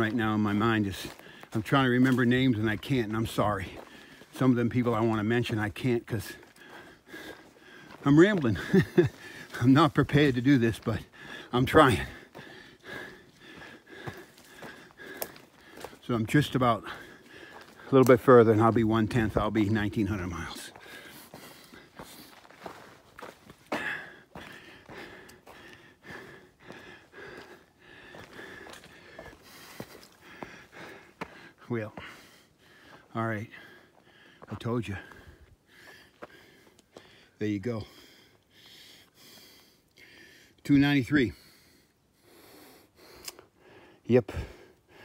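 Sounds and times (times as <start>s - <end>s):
footsteps on dirt and rock: 0.0s - 38.4s
man breathing: 1.0s - 1.6s, 3.7s - 4.3s, 6.2s - 9.6s, 11.0s - 18.0s, 20.6s - 40.6s, 41.3s - 45.0s.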